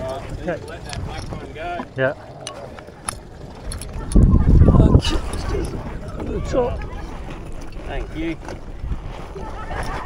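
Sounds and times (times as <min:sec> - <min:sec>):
low steady rumble: 0:00.0 - 0:09.8.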